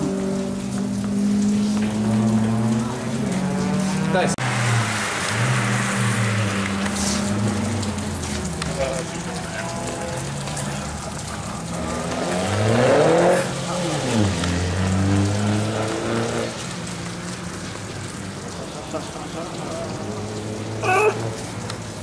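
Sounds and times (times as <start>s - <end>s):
car engine revving: 0.0s - 18.5s
rain hiss: 0.0s - 22.0s.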